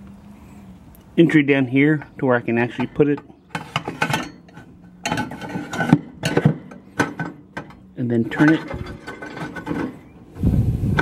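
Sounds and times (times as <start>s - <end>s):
metal tube scraping and clunking: 2.6s - 10.2s.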